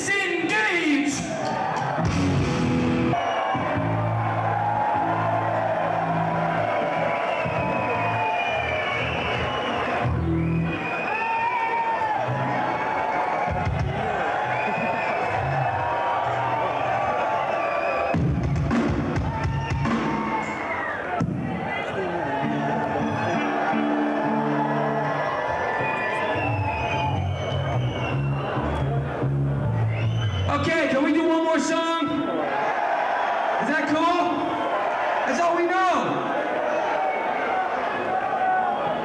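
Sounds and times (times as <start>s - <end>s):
drum kit: 1.2s - 3.9s, 18.1s - 21.5s
bass guitar: 1.9s - 6.3s, 26.4s - 30.5s
distorted electric guitar: 2.0s - 3.1s.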